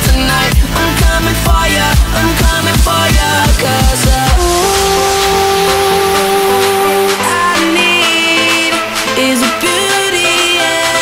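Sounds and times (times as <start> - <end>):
hissing noise wash: 0.2 - 9.2
held synth note: 4.3 - 8.0.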